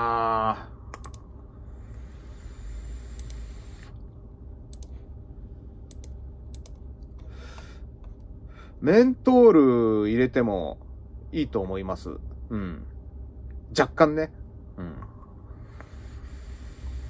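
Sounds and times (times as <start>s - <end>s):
e-cigarette draw hiss: 2.0s - 3.9s, 15.7s - 17.0s
light clicks: 4.7s - 5.0s, 5.9s - 8.3s
short breath: 7.2s - 7.9s, 15.6s - 17.0s.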